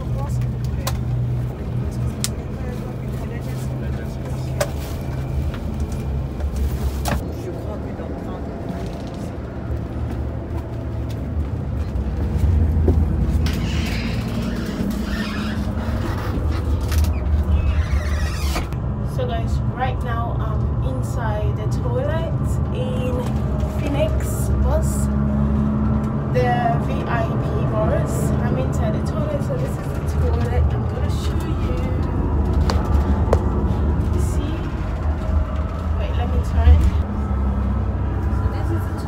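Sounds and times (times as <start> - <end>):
bus rumbling on road: 0.0 - 39.0.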